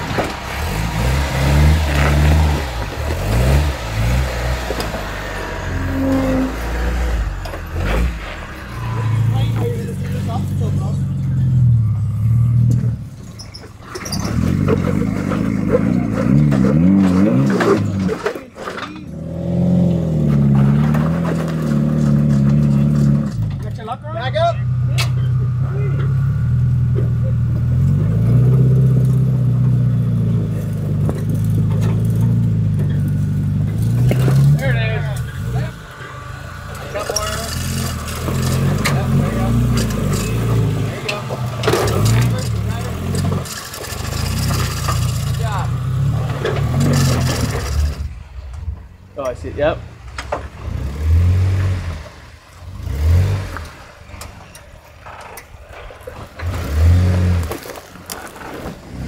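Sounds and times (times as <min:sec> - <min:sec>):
off-road engines running: 0:00.0 - 0:59.0.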